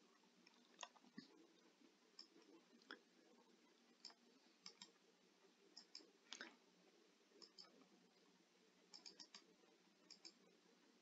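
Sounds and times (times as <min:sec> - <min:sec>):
computer mouse clicks: 0:02.1 - 0:03.0, 0:04.0 - 0:05.0, 0:05.7 - 0:06.6, 0:07.4 - 0:07.8, 0:08.9 - 0:10.5.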